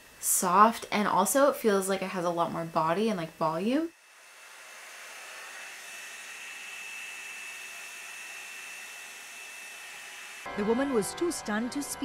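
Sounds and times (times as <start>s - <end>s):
dryer brush fan noise: 0.0s - 10.5s.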